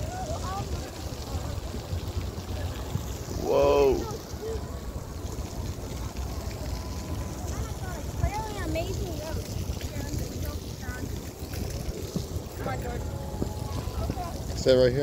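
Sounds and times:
faint distant voices: 0.0 - 15.0
wind buffeting microphone: 0.0 - 15.0.

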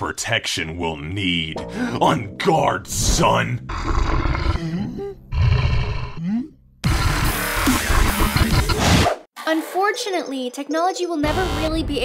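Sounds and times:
cartoon character growling roar: 3.7 - 6.4.

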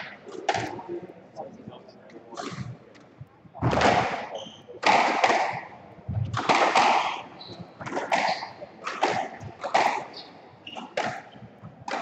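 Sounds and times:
squash ball hits: 3.6 - 5.7, 6.3 - 7.2, 7.8 - 10.1, 10.8 - 12.0.

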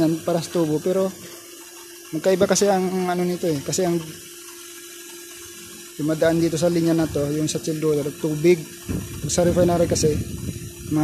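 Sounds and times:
steady low hum: 0.0 - 11.0
water rushing through pipes: 0.0 - 11.0.

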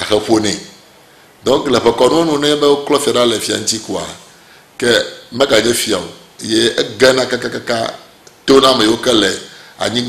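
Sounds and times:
man speaking: 0.0 - 0.8, 1.4 - 10.0.

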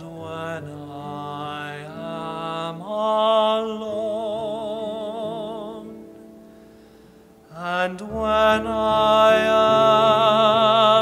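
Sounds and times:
tenor voice singing: 0.0 - 6.1, 7.5 - 11.0
piano accompaniment: 0.0 - 11.0.

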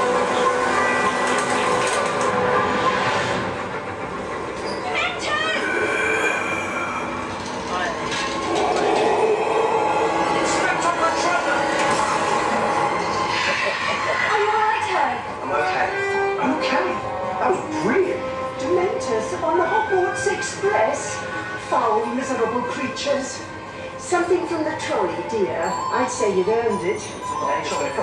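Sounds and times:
train running: 0.0 - 28.0
sustained tones: 8.2 - 13.3.

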